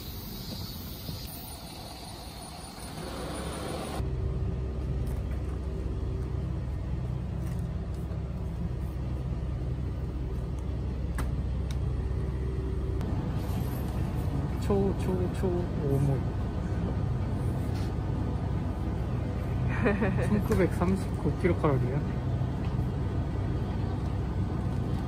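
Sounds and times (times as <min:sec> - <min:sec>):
outdoor noise: 0:00.0 - 0:25.0
refrigerator cooler hum: 0:02.6 - 0:25.0.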